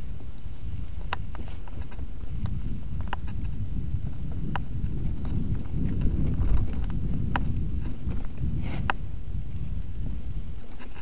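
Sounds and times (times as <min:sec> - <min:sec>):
bike tyres rumbling on dirt: 0:00.0 - 0:11.0.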